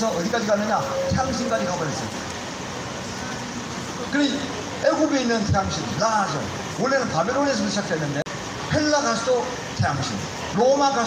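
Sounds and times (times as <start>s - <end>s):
background hiss and rumble: 0.0s - 11.0s.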